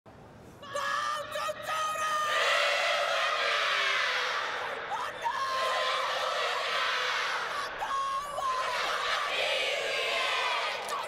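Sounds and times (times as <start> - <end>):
women chanting and shouting together: 0.6 - 11.0.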